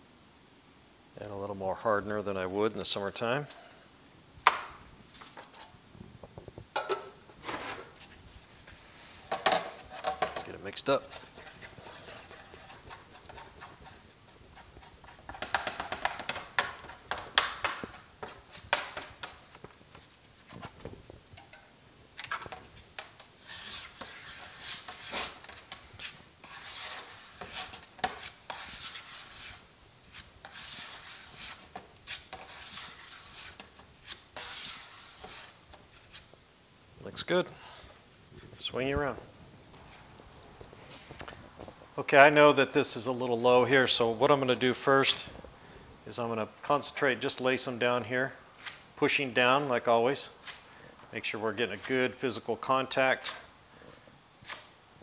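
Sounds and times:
spreader scraping on metal board: 0:09.6 - 0:19.3, 0:22.2 - 0:36.3.

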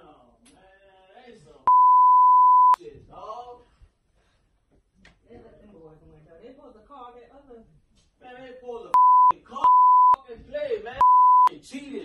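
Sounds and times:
high-pitched censor bleeps: 0:01.7 - 0:02.8, 0:09.0 - 0:10.2, 0:11.0 - 0:11.5.

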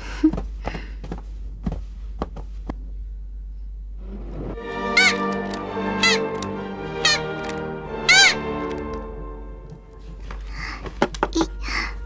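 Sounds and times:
cartoon music: 0:04.6 - 0:09.9.

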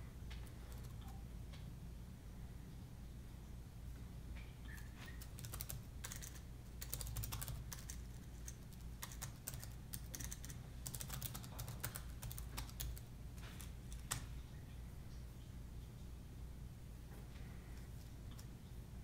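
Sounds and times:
low steady hum: 0:00.0 - 0:19.0
laptop keyboard typing: 0:00.4 - 0:01.2, 0:04.8 - 0:14.3.

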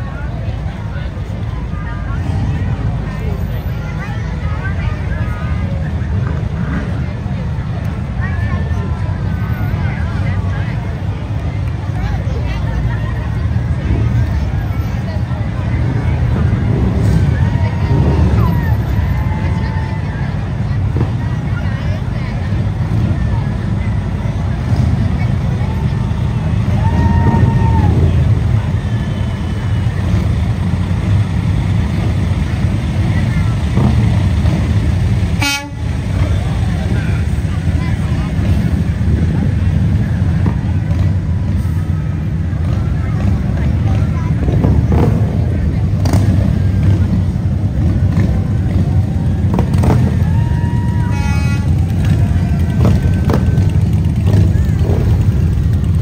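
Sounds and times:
motorcycles passing: 0:00.0 - 0:56.0
vehicle engines rumbling: 0:00.0 - 0:56.0
horn toots: 0:35.3 - 0:36.3, 0:50.9 - 0:54.9.

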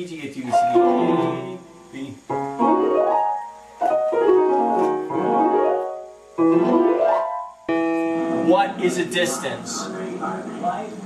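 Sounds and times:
piano playing quick runs: 0:02.3 - 0:09.4.

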